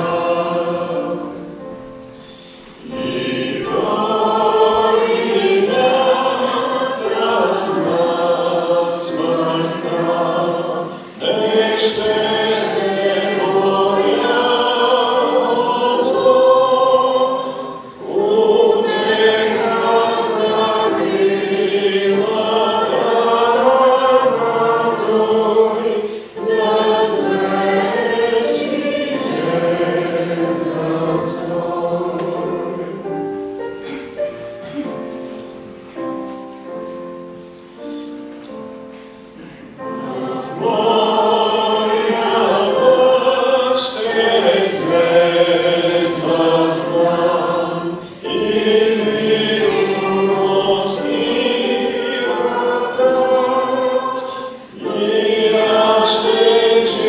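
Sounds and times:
congregation singing a hymn: 0.0s - 57.0s.

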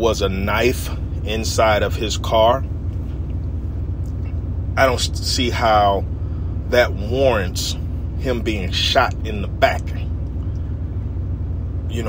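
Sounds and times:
vehicle running from inside cab: 0.0s - 12.0s.

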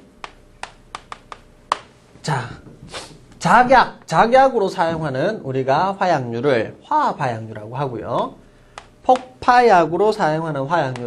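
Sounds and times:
chalk tapping on a chalkboard: 0.2s - 1.9s, 8.8s - 9.5s.

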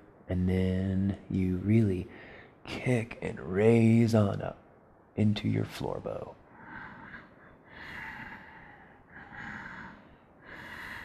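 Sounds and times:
man breathing hissing breaths: 6.5s - 11.0s.

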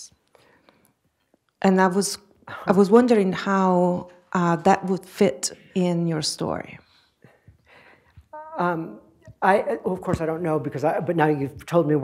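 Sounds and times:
faint breathing: 0.3s - 1.0s, 6.8s - 8.3s
person speaking: 8.2s - 12.0s.

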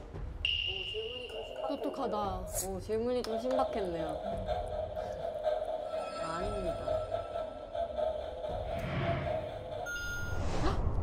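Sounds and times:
whoosh effect: 9.9s - 11.0s.

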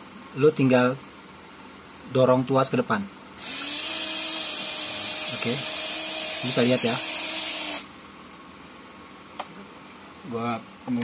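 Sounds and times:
electric motor whining: 3.4s - 7.9s.

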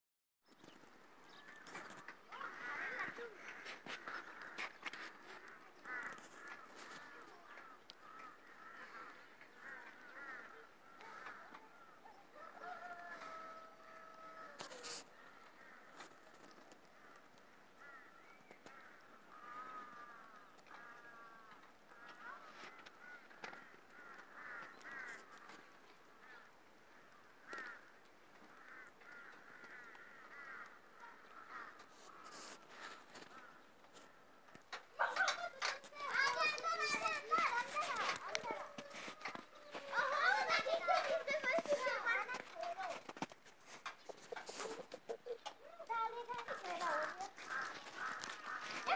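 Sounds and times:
hens and rooster clucking: 9.9s - 15.2s, 35.0s - 48.9s
faint rooster crow: 11.0s - 15.4s.

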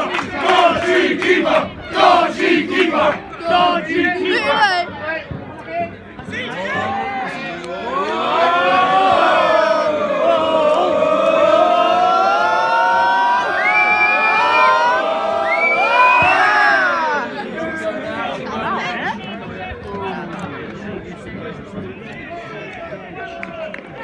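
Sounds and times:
football crowd singing and chanting: 0.0s - 24.0s.

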